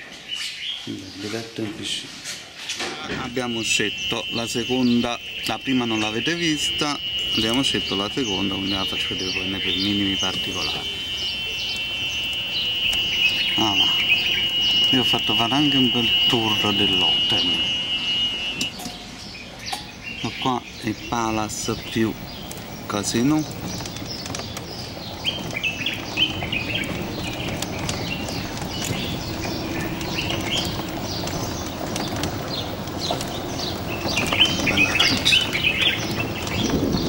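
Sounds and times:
small birds chirping: 0.0 - 37.0
steady high-pitched tone: 3.1 - 19.3.

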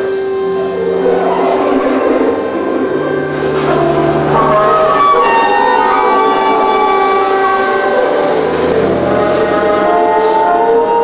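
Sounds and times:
ensemble holding dense chord: 0.1 - 11.0
low held note: 0.6 - 11.0.

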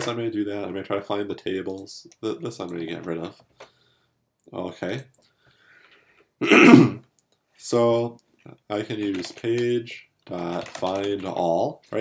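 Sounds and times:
man clearing his throat: 6.4 - 7.1.

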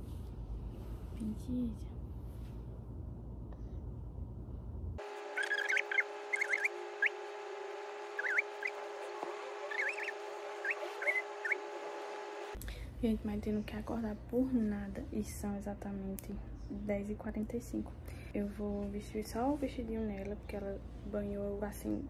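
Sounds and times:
low rumbling room noise: 0.0 - 22.0
bird-like chirps: 5.3 - 7.2, 8.1 - 11.7.

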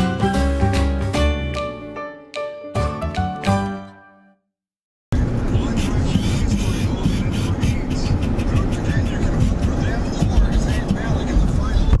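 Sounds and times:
low road noise: 5.1 - 12.0.

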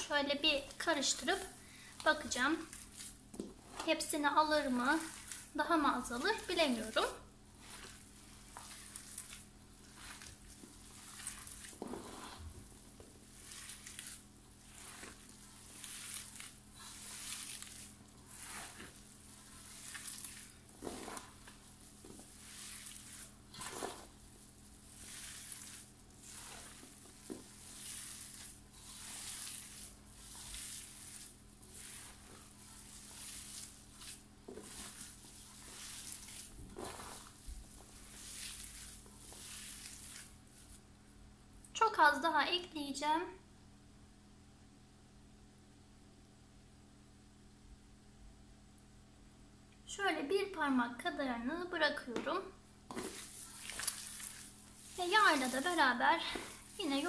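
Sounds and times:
hands kneading wet mixture: 0.0 - 41.8, 52.0 - 57.0.

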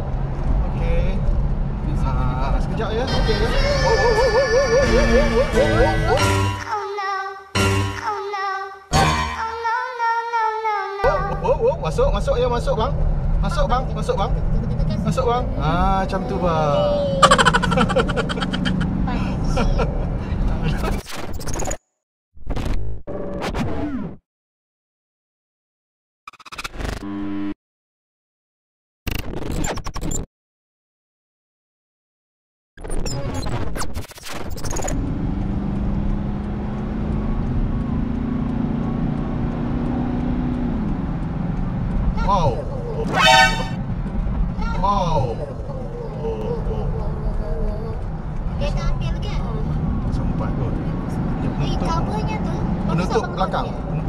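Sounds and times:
car engine and road hum: 0.0 - 6.7, 11.1 - 20.8, 34.7 - 54.0
person exclaiming: 3.1 - 6.2, 16.7 - 18.9
person speaking: 16.8 - 18.9
car horn: 43.1 - 43.8.

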